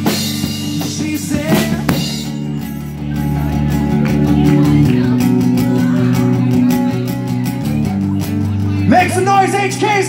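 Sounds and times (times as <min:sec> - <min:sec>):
drum kit with cymbal hits: 0:00.0 - 0:09.8
acoustic guitar strumming chords: 0:00.0 - 0:10.0.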